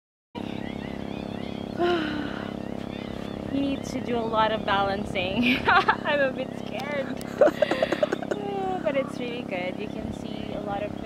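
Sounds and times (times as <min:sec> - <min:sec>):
boat engine running: 0:00.4 - 0:11.0
woman speaking: 0:03.5 - 0:11.0.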